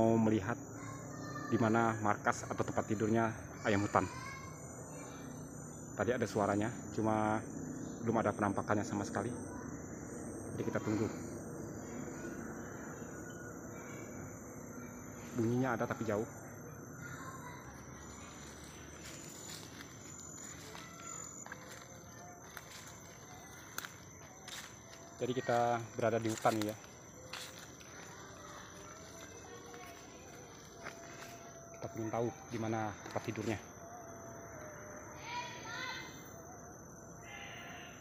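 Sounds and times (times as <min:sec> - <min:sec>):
faint background hum: 0:00.0 - 0:38.0
insects chorus: 0:00.0 - 0:38.0
footsteps through leafy undergrowth: 0:18.3 - 0:31.5.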